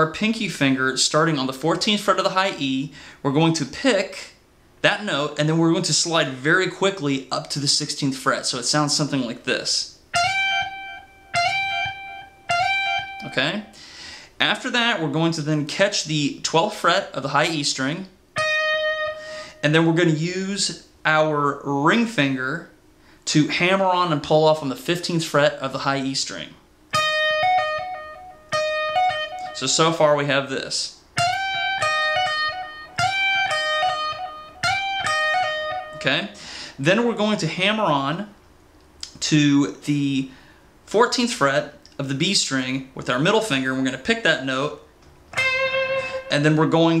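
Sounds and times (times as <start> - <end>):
electric guitar sliding lead notes: 10.1 - 13.8, 18.4 - 19.6, 26.9 - 29.6, 31.2 - 36.0, 45.3 - 47.0.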